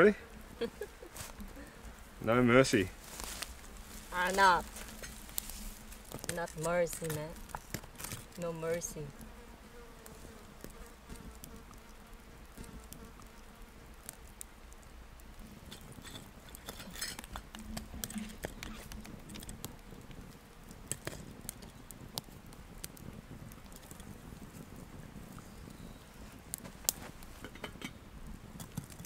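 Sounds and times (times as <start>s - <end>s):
campfire crackling and popping: 0.0s - 29.0s
fly buzzing: 3.0s - 14.4s.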